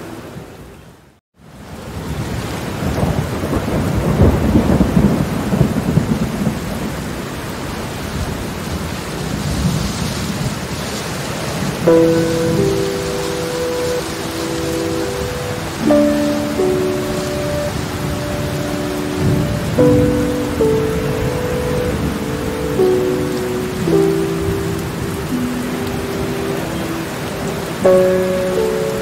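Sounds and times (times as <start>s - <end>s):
heavy rain: 0.0s - 29.0s
low rumbles of thunder: 2.8s - 7.1s
soft music with held chords: 11.8s - 29.0s.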